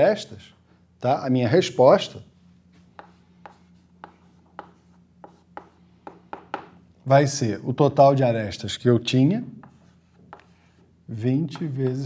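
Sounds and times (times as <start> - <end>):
chalk writing on chalkboard: 3.0 - 6.7, 9.6 - 10.9.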